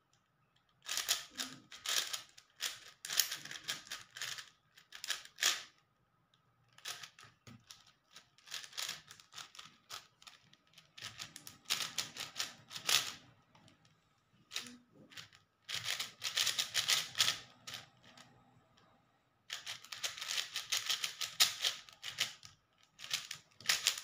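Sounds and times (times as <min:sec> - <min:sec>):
puzzle cube clicking: 0:14.5 - 0:17.8, 0:19.5 - 0:22.4.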